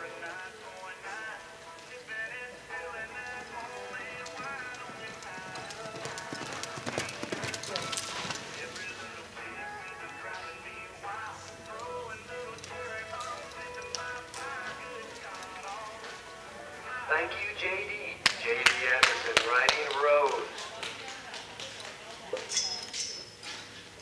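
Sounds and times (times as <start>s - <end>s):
background music: 0.0s - 24.0s
horse hoofbeats on dirt: 1.6s - 9.2s, 11.6s - 16.4s.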